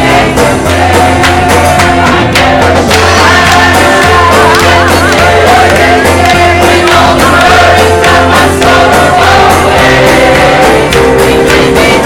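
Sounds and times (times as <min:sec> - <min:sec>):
choir singing with band: 0:00.0 - 0:12.0.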